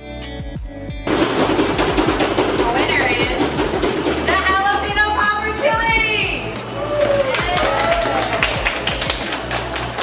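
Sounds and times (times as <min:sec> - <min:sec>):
background music: 0:00.0 - 0:10.0
people clapping: 0:06.8 - 0:10.0.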